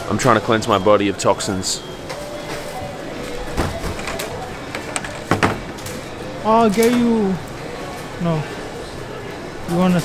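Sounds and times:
distant voices: 0.0s - 10.0s
faint store music: 0.0s - 10.0s
groceries clicking and knocking: 3.4s - 7.2s.

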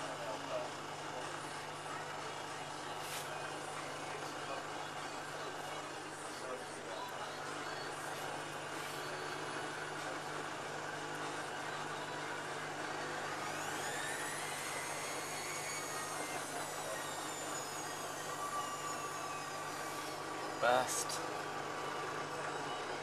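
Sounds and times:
motor whine rising in pitch: 13.1s - 23.0s.

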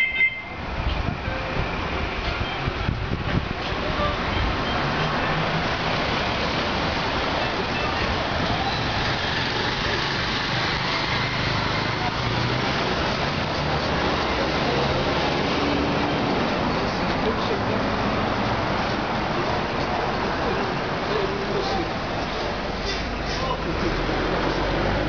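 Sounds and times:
traffic hum: 0.0s - 25.0s.

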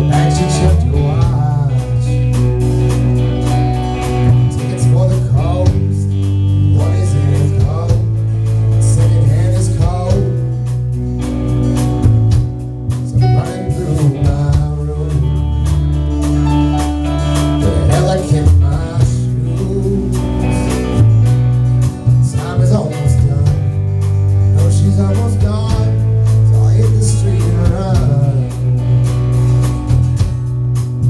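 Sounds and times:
man singing: 0.0s - 10.8s, 13.0s - 16.4s, 17.4s - 21.2s, 22.1s - 23.8s, 24.4s - 29.1s
live rock band playing: 0.0s - 31.0s.

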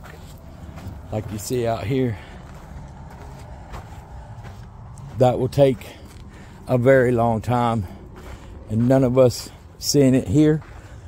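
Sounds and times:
distant road traffic rumble: 0.0s - 11.0s
man speaking: 1.1s - 2.4s, 5.0s - 6.1s, 6.7s - 8.0s, 8.6s - 10.8s.

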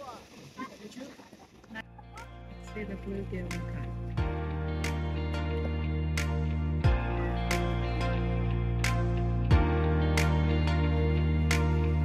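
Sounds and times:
background music: 1.8s - 12.0s.

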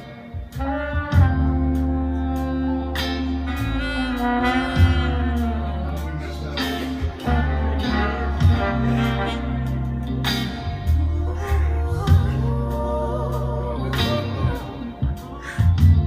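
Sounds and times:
steady drum beat: 0.0s - 2.0s, 3.0s - 16.0s
heavy bass: 0.0s - 16.0s
horn section: 0.0s - 16.0s
woman singing: 10.8s - 16.0s.

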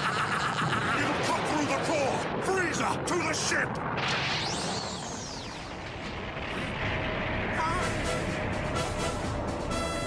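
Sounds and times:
dense continuous rumble: 0.0s - 10.0s.

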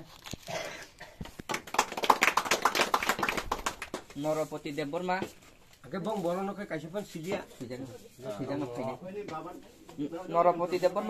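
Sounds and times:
group of people clapping: 1.2s - 4.5s.

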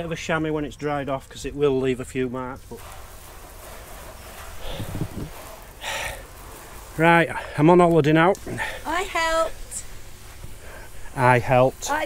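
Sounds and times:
outdoor rustle: 0.0s - 12.0s.

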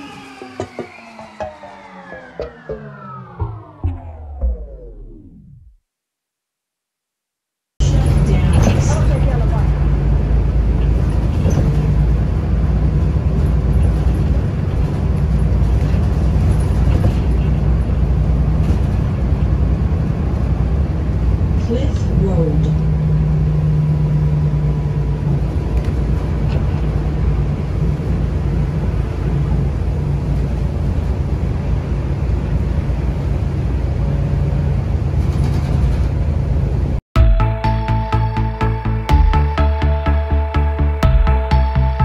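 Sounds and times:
car engine and tyres rumbling: 7.8s - 37.0s.

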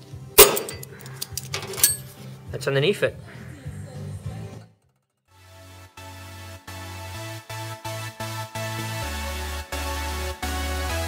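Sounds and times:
hammer striking steel: 0.4s - 0.9s
light metallic clinks: 0.4s - 2.1s.

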